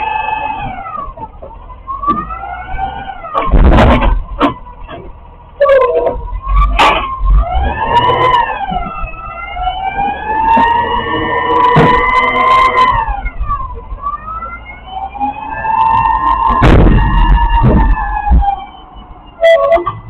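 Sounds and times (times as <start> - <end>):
garbage truck engine whine: 0.0 - 20.0
truck body clunks: 0.6 - 5.2, 6.0 - 7.2, 11.6 - 12.2, 16.5 - 19.2.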